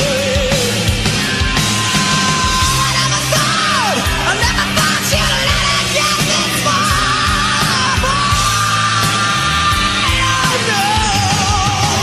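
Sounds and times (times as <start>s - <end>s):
heavy metal band playing: 0.0s - 12.0s
high lead guitar line: 0.0s - 12.0s.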